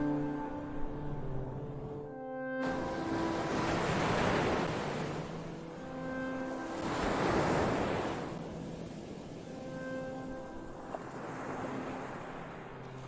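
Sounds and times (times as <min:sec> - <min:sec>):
ocean waves washing in: 0:00.0 - 0:13.0.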